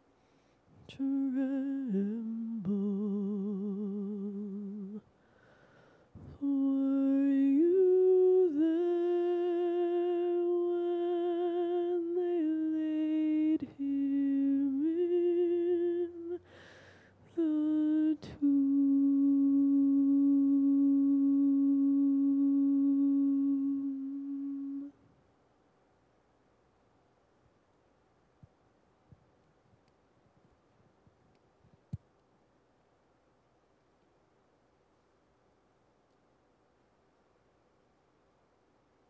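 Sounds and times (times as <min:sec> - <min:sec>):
person humming a slow melody: 0:00.8 - 0:05.1, 0:06.2 - 0:25.0.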